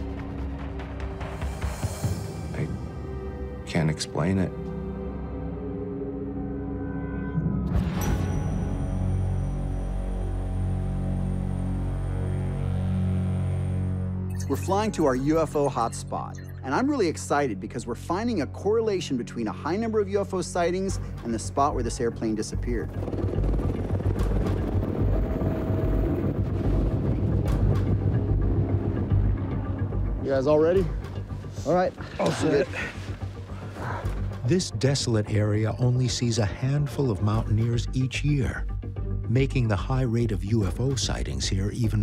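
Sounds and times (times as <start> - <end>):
music: 0.0 - 42.0
helicopter cabin hum: 22.8 - 30.2.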